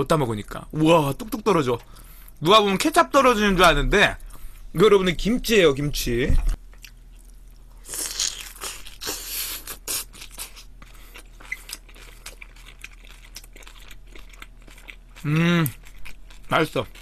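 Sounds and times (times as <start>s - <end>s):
crunchy chewing: 6.5s - 17.0s.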